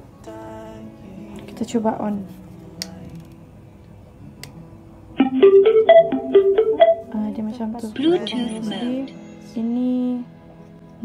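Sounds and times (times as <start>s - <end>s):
plucked startup melody from speaker: 5.2s - 7.4s.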